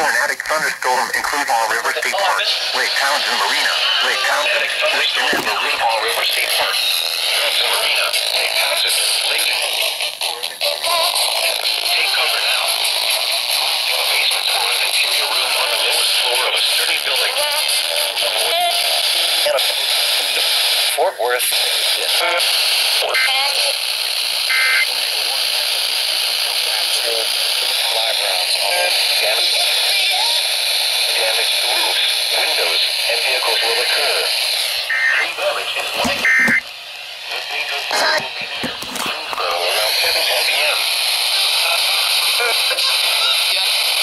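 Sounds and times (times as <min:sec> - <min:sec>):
radio station music: 0:00.0 - 0:22.4, 0:26.4 - 0:30.3, 0:31.0 - 0:44.0
radio station speech: 0:00.0 - 0:23.8, 0:24.5 - 0:44.0
radio static hiss: 0:00.0 - 0:44.0
short radio tone: 0:24.5 - 0:25.3, 0:31.4 - 0:36.7, 0:37.3 - 0:40.8.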